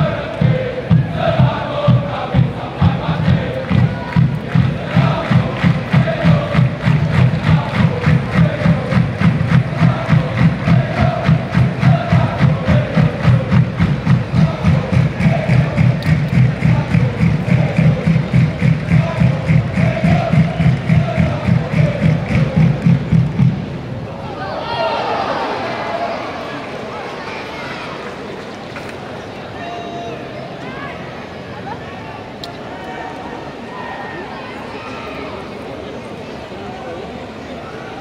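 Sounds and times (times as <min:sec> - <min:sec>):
bass drum beating: 0:00.0 - 0:23.8
crowd chanting in unison: 0:00.0 - 0:27.0.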